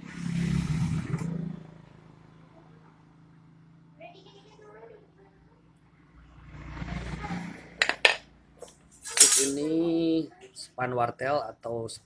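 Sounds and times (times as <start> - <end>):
metal hardware clinking: 7.8 - 8.2, 9.0 - 9.7
metallic rattle: 8.9 - 9.7.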